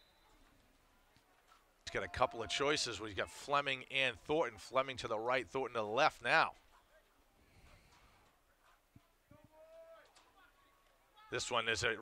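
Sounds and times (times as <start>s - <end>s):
faint distant shout: 9.4s - 11.4s.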